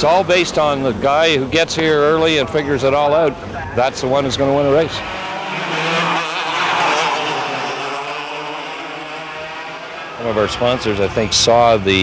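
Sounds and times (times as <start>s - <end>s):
go-kart engines buzzing: 0.0s - 12.0s.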